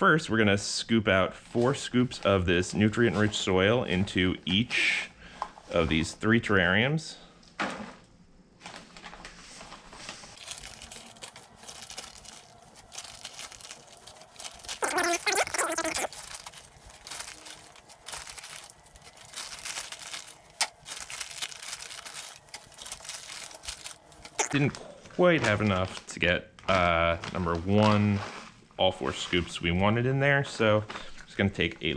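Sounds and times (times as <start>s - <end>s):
plastic bag crinkling: 10.4s - 24.8s.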